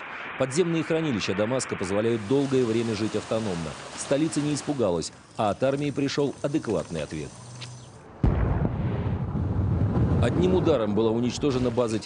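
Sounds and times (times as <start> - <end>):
low rumble: 0.0 - 2.9, 8.2 - 10.9
explosion blast: 8.2 - 10.8.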